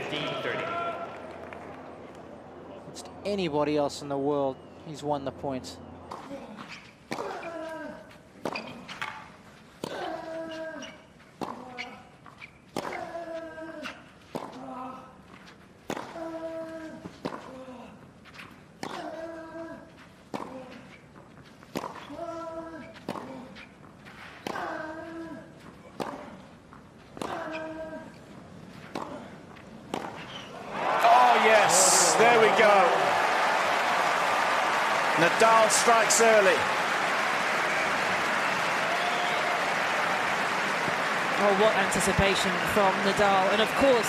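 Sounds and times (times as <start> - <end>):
crowd cheering and shouting: 30.6 - 44.0.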